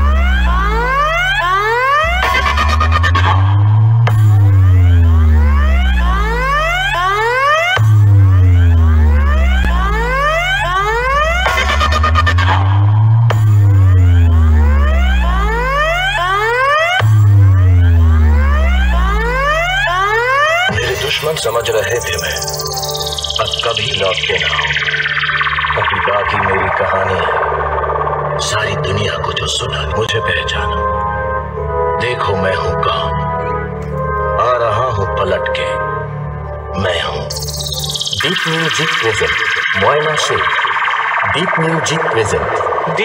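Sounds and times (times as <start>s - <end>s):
deep bass sweeps: 0.0s - 32.0s, 35.8s - 43.0s
rising whistle-like glides: 21.6s - 29.3s, 37.3s - 43.0s.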